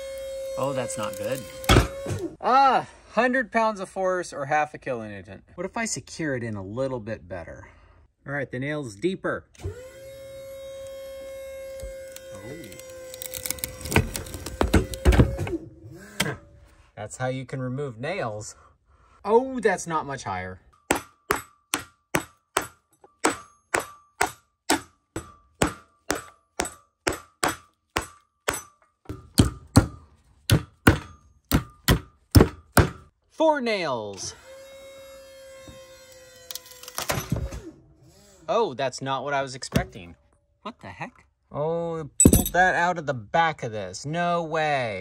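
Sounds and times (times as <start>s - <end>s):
electric motor whining: 0.0s - 2.3s, 9.6s - 16.4s.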